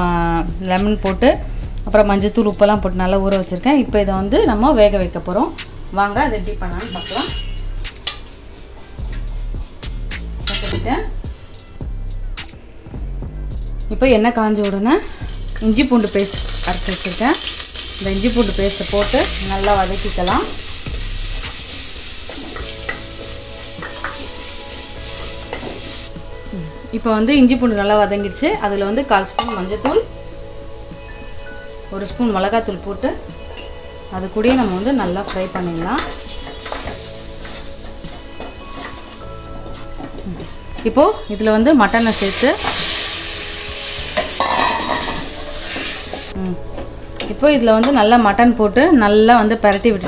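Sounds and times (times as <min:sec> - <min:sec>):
paste sizzling in hot oil: 0:15.0 - 0:32.7, 0:33.4 - 0:46.4.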